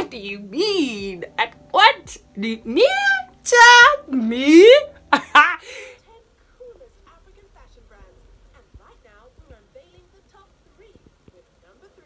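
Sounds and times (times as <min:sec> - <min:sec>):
faint television talking: 0:05.8 - 0:12.0
soft low thuds: 0:06.3 - 0:11.4.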